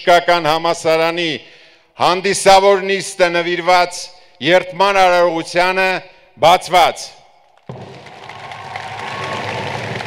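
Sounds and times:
audience applauding: 7.6 - 10.0.

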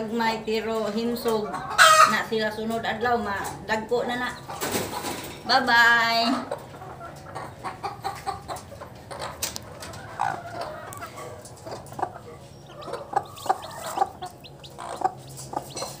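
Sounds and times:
chickens clucking: 0.0 - 16.0
chicks peeping: 0.1 - 16.0.

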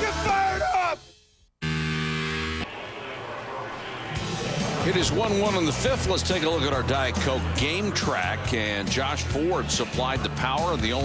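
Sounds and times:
people yelling: 0.0 - 1.0
television music: 2.1 - 11.0.

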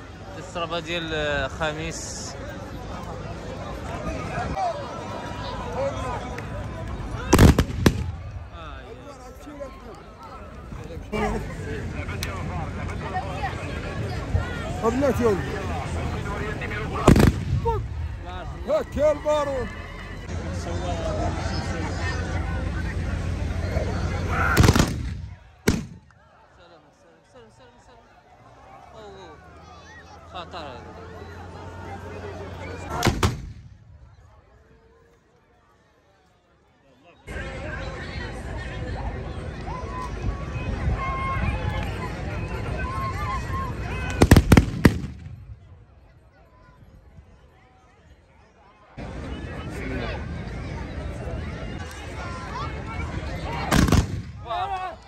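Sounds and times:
crowd noise: 0.0 - 55.0
musket gunshots: 24.5 - 26.0, 33.0 - 33.6, 53.7 - 54.4.

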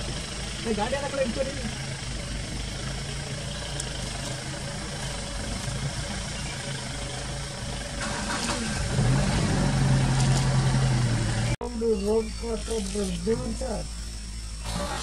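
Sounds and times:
vehicle engine idling: 0.0 - 15.0.

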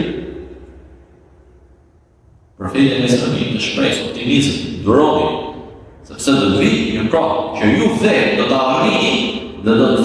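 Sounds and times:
man talking: 0.0 - 0.4, 2.6 - 10.0.

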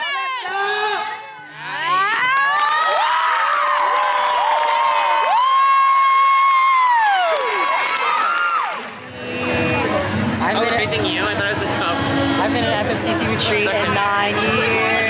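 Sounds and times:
crowd screaming and cheering: 0.0 - 15.0
crowd chatter: 7.6 - 15.0.

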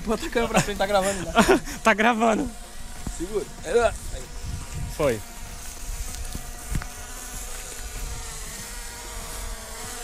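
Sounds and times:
drone propellers buzzing: 0.0 - 10.0.

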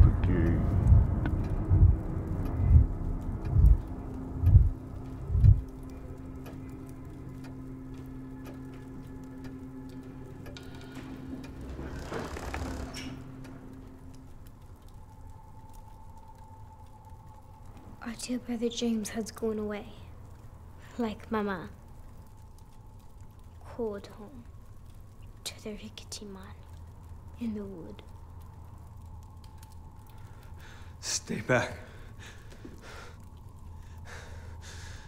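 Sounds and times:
sustained low drone: 0.0 - 18.0.

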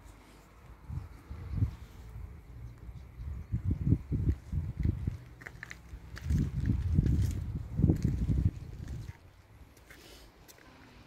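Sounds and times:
wind buffeting microphone: 0.7 - 9.8.

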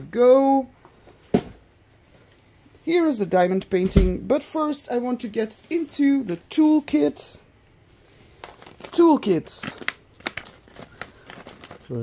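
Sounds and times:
person speaking: 0.0 - 0.8, 2.8 - 7.5, 8.8 - 9.9.

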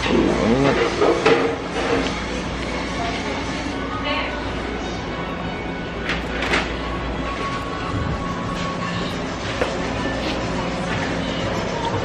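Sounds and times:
faint music: 0.0 - 12.0
shop background noise: 0.0 - 12.0.

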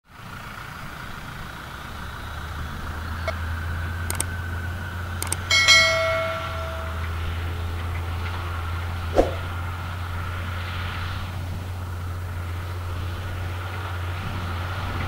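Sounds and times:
distant tractor engine droning: 0.2 - 15.0
sharp clicks: 4.0 - 4.4, 5.2 - 7.1
bright bell chime: 5.2 - 7.2.

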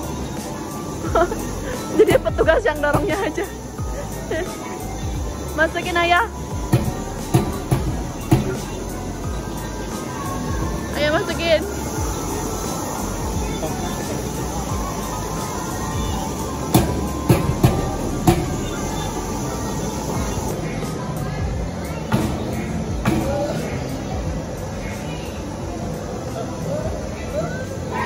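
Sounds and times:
background music: 0.0 - 28.0
crowd noise: 0.0 - 28.0.

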